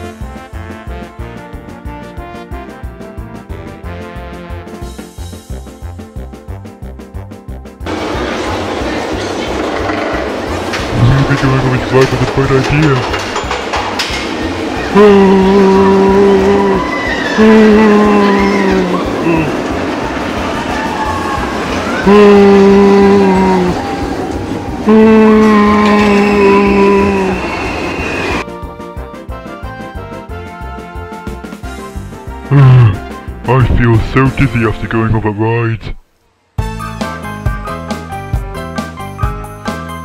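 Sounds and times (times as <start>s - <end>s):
rhythmic background music: 0.0s - 16.8s, 28.4s - 35.2s, 36.6s - 40.0s
roller coaster train rumbling on track: 7.8s - 28.5s.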